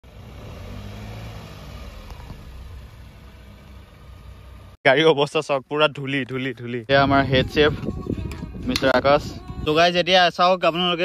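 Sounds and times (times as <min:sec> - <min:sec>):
car engine running low: 0:00.0 - 0:04.8.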